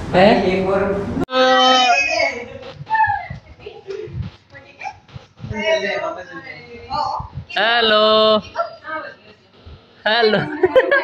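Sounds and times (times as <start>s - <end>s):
soft talking: 1.6s - 10.6s.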